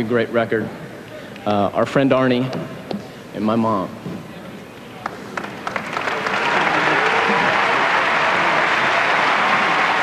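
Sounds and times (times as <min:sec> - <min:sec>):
audience applause: 0:05.0 - 0:10.0.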